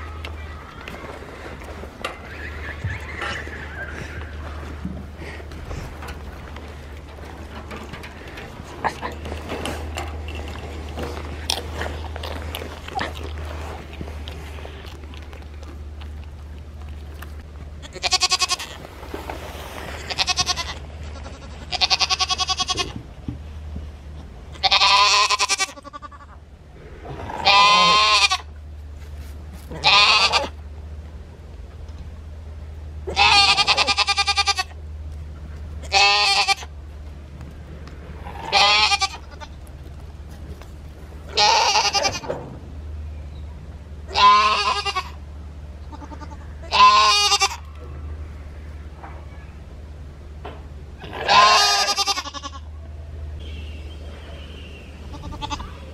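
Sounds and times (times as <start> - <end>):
goats bleating: 0.0 - 7.5, 17.8 - 18.9, 20.0 - 23.0, 24.5 - 26.4, 27.2 - 28.5, 29.7 - 30.6, 33.0 - 34.8, 35.8 - 36.8, 38.1 - 39.7, 41.3 - 42.3, 44.1 - 45.2, 45.8 - 49.0, 51.0 - 52.7, 55.0 - 55.9.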